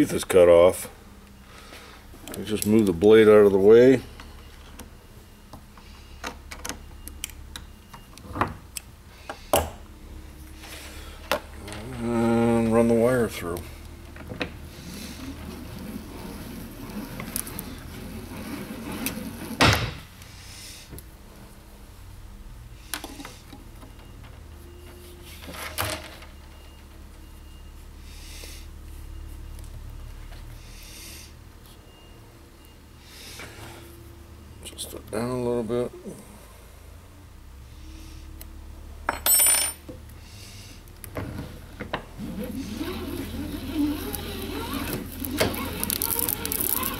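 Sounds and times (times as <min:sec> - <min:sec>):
low steady hum: 0:00.0 - 0:46.9
metal scraping slide: 0:14.7 - 0:19.7.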